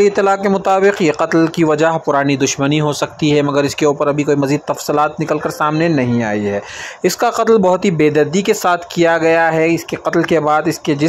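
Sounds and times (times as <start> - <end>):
man talking: 0.0 - 11.0.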